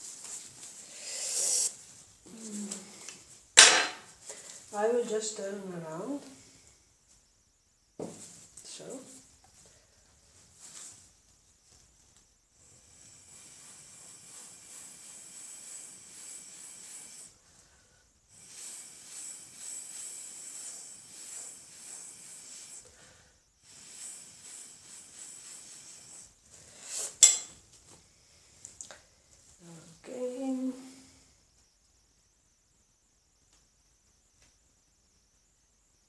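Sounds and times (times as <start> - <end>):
breathy hiss through a straw: 0.0 - 4.8, 12.6 - 29.2, 30.7 - 31.4.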